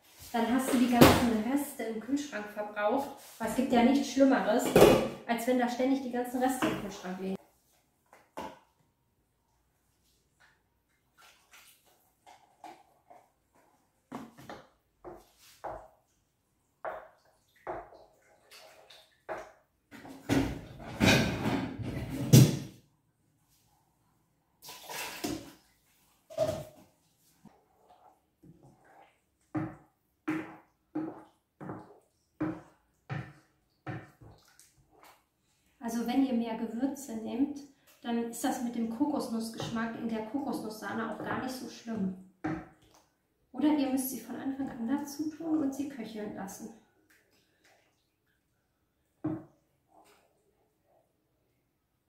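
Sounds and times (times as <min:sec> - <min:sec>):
wooden spatula on a pan: 0:26.1 - 0:35.3.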